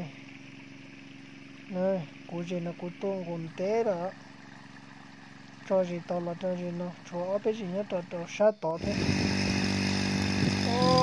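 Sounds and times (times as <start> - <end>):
motorcycle engine running: 0.0 - 11.0
wheel spinning in muddy water: 0.0 - 11.0
person speaking: 10.6 - 11.0.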